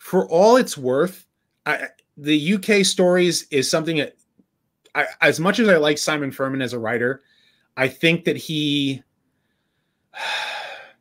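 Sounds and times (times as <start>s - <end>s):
man sharp breath in: 7.2s - 7.8s, 9.3s - 11.0s.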